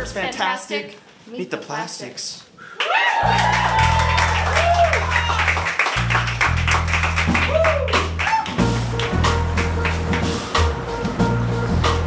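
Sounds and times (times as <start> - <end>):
deep bass line: 3.2 - 12.0
steady drum beat: 3.3 - 12.0.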